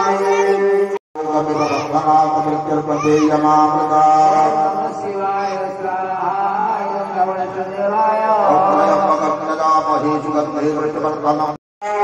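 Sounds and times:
priests chanting through microphones: 0:00.0 - 0:12.0.

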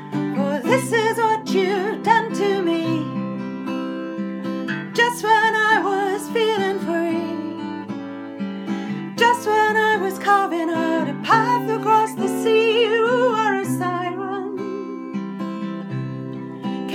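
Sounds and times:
woman singing slow song: 0:00.0 - 0:03.3, 0:04.9 - 0:07.9, 0:09.1 - 0:15.4
strummed acoustic guitar: 0:00.0 - 0:16.9.

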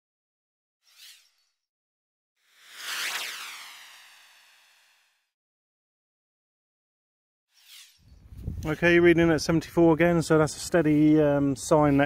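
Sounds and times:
long sweeping swoosh: 0:02.4 - 0:05.2
short swish: 0:02.6 - 0:05.1.

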